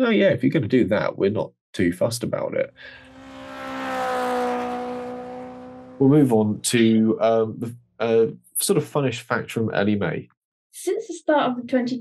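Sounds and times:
racing car engine passing by: 0:02.7 - 0:07.2.

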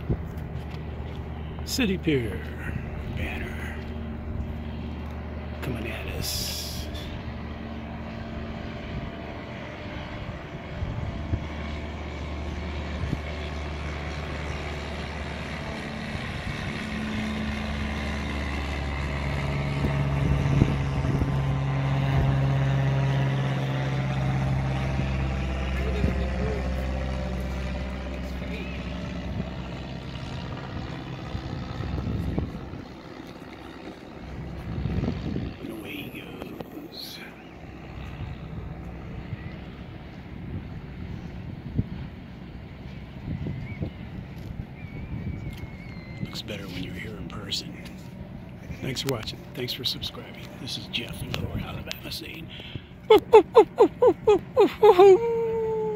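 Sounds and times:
propeller plane passing overhead: 0:00.0 - 0:55.9.

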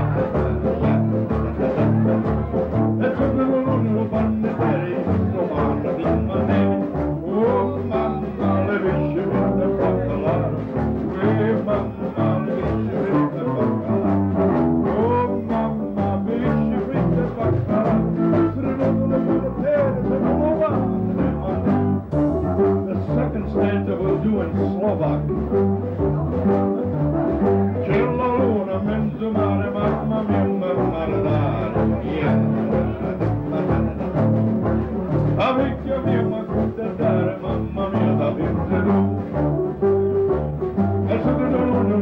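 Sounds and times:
bass line: 0:00.0 - 0:42.0
brass horn melody: 0:00.0 - 0:42.0
drums: 0:00.0 - 0:42.0
guitar: 0:00.0 - 0:42.0.

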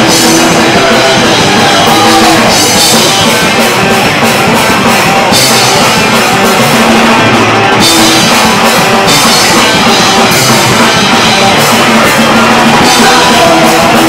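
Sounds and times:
bass guitar: 0:00.0 - 0:14.0
drum kit with crashing cymbals: 0:00.0 - 0:14.0
electric guitars: 0:00.0 - 0:14.0.

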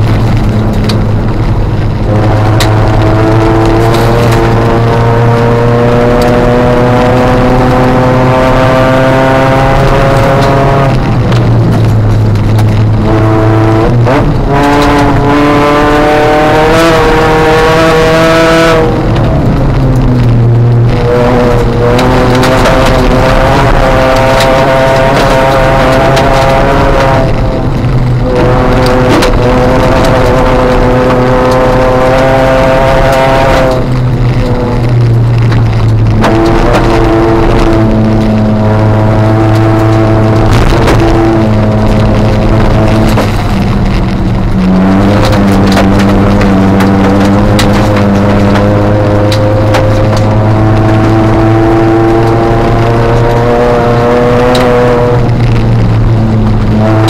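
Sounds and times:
car engine accelerating hard: 0:00.0 - 0:57.0.

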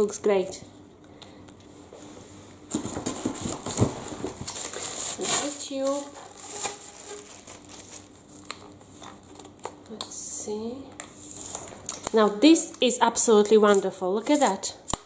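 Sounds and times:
plastic wrapping crinkling: 0:02.7 - 0:09.8.

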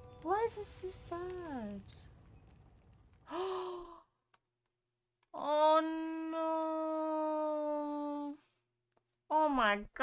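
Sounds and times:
faint low background: 0:00.0 - 0:10.0
woman sighing: 0:03.3 - 0:04.1.

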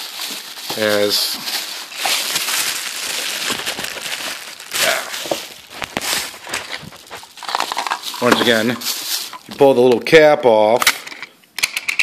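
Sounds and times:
plastic wrapping crinkling: 0:00.0 - 0:10.2.

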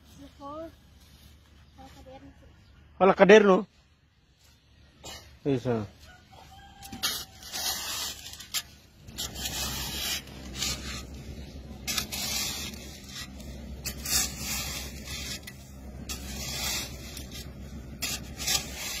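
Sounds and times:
rough scraping strokes: 0:04.2 - 0:19.0
low steady rumble: 0:06.8 - 0:19.0.

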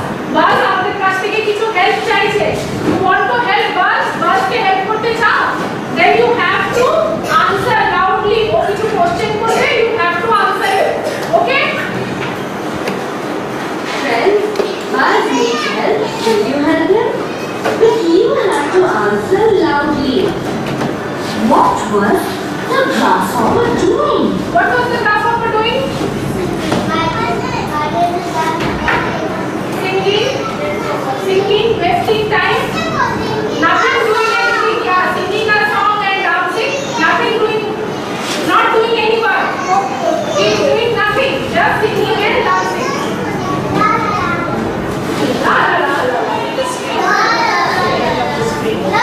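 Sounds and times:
children speaking: 0:00.0 - 0:49.0.

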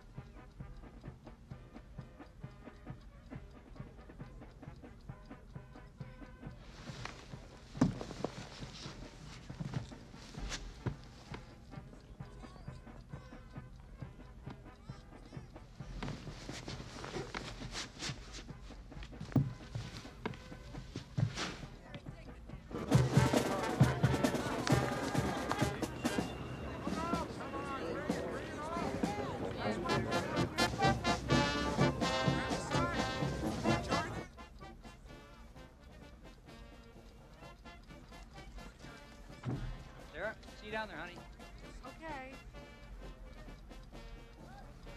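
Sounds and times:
crowd voices: 0:05.8 - 0:34.8
brass band music: 0:22.7 - 0:44.9.

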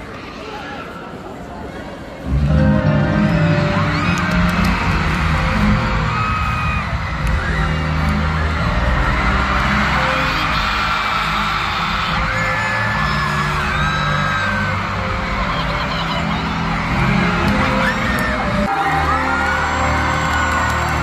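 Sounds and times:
crowd screaming and whooping: 0:02.2 - 0:21.0
loud live band music: 0:02.3 - 0:21.0.

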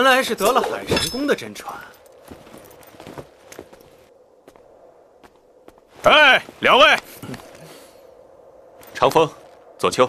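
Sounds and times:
footsteps on stone paving: 0:02.2 - 0:05.9.

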